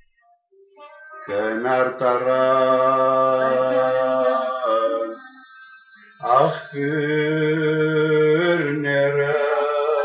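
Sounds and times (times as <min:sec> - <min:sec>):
man singing a long note: 0:01.1 - 0:05.4, 0:06.2 - 0:10.0.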